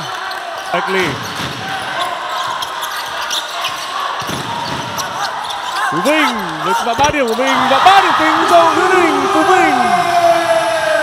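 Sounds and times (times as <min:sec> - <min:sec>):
spectators' voices: 0:00.0 - 0:11.0.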